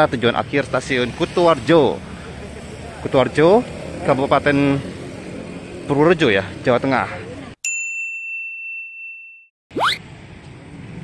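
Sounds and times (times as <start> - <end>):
street background: 0.0 - 8.0, 9.7 - 11.0.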